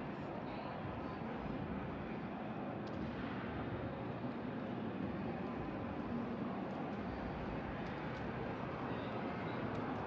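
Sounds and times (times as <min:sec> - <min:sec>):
city background rumble and hiss: 0:00.0 - 0:10.0.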